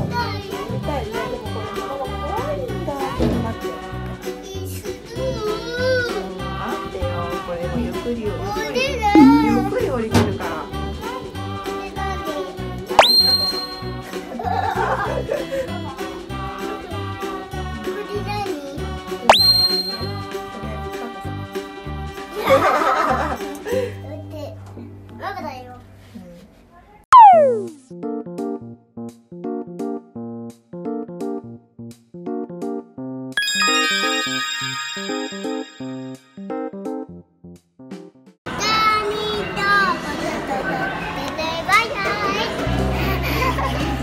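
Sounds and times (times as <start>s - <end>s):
upbeat children's music: 0.0s - 24.0s, 27.2s - 27.8s, 30.2s - 37.2s
rising whistle-like tone: 13.0s - 14.0s, 19.3s - 20.3s, 27.1s - 27.7s.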